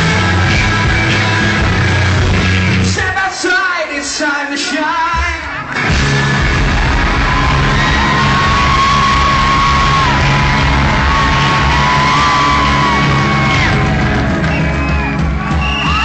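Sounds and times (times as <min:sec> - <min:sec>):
rock band playing live: 0:00.0 - 0:03.4, 0:05.0 - 0:16.0.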